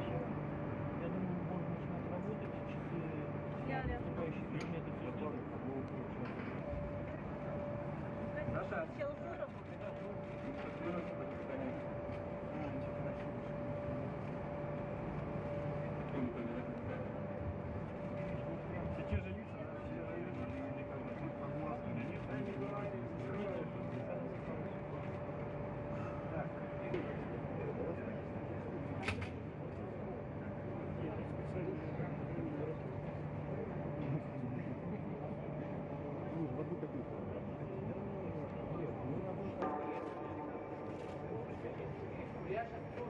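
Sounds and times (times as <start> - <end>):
equipment hum: 0.0 - 43.0
faint indistinct voices: 0.0 - 43.0
constant high tone: 38.8 - 43.0.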